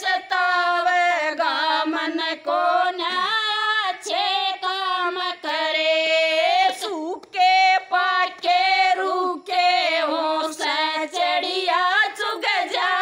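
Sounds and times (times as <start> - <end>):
women singing without instruments: 0.0 - 13.0.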